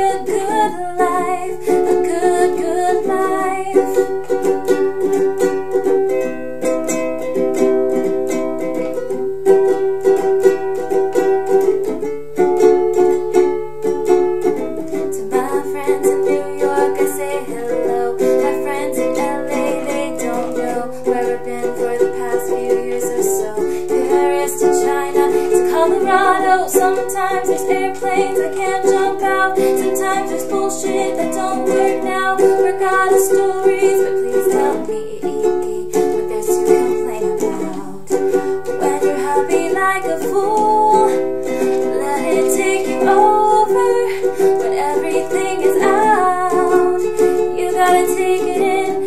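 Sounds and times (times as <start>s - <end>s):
ukulele strumming: 0.0s - 49.0s.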